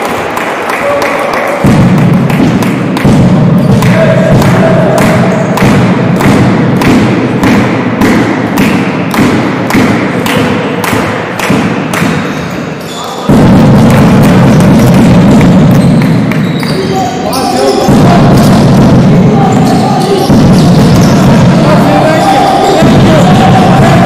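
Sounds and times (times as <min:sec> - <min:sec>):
loud rhythmic thuds: 0:00.0 - 0:24.0.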